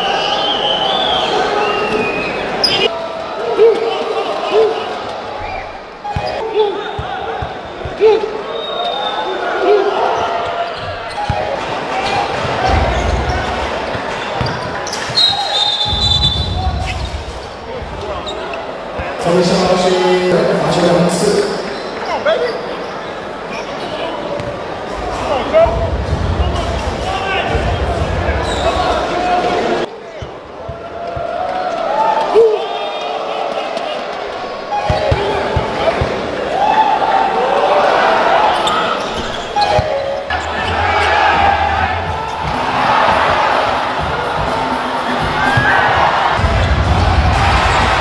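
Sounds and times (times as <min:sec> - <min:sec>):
arena crowd noise: 0:00.0 - 0:48.0.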